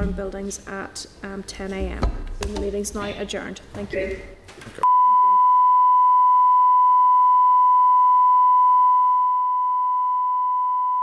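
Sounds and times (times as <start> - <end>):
steady electronic test tone: 4.8 - 11.0.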